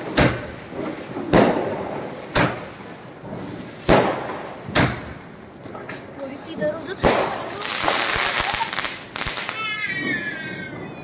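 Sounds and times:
fireworks crackling and popping: 0.0s - 11.0s.

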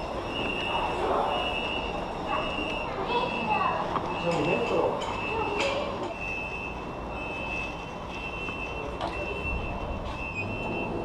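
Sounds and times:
lift beeper beeping: 0.1s - 11.0s.

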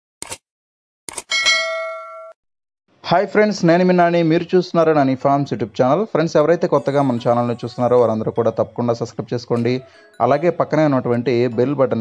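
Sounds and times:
bright bell ding: 1.3s - 2.4s.

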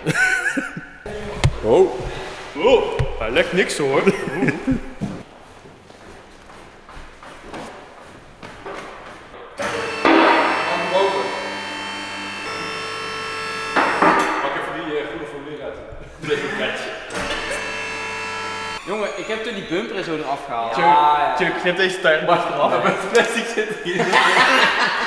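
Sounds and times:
men talking: 1.1s - 5.0s, 10.7s - 11.6s, 14.4s - 17.7s, 18.8s - 25.0s
hydraulic lift motor humming: 9.6s - 14.4s, 17.1s - 19.9s.

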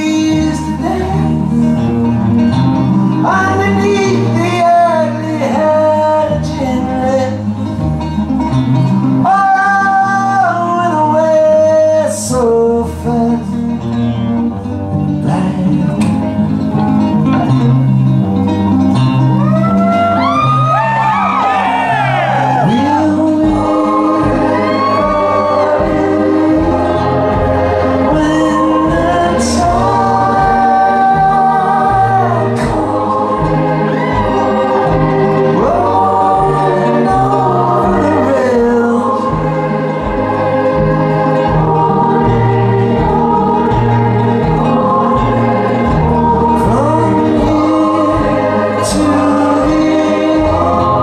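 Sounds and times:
man singing long notes: 0.0s - 2.1s, 19.8s - 39.7s
strummed acoustic guitar: 0.0s - 51.0s
rock band playing: 13.1s - 51.0s
steady low beat: 23.5s - 51.0s.

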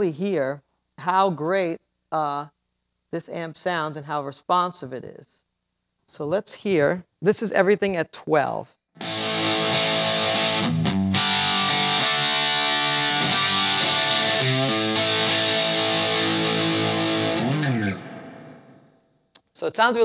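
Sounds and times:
overdriven electric guitar chords: 9.0s - 18.9s.

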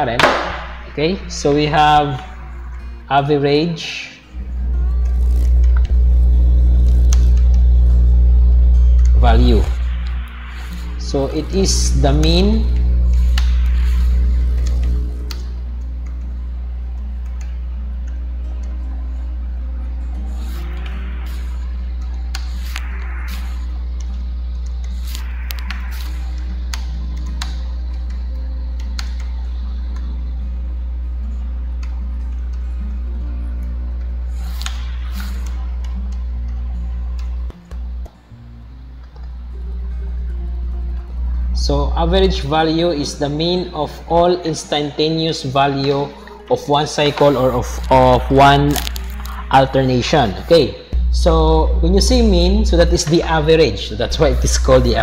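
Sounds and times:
loud low hum with buzz: 0.0s - 45.9s, 46.7s - 55.0s.

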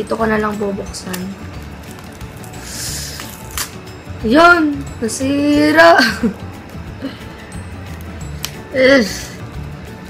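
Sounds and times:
background music: 0.0s - 10.0s
wrapper snapping: 1.1s - 3.8s
plastic wrapper tearing: 1.8s - 3.8s.

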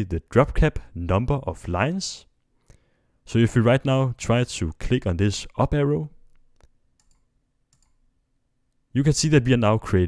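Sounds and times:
computer mouse clicks: 6.3s - 8.0s.

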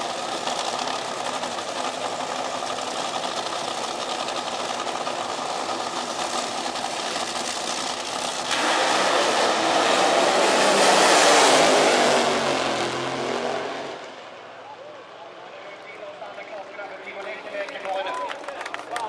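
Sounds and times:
dragster engines running: 0.0s - 10.8s
engine revving in burnout: 8.0s - 14.1s.

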